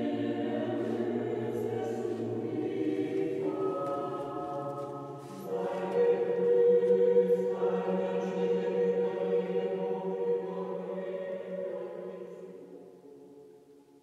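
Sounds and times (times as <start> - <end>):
choir singing held chords: 0.0 - 13.7.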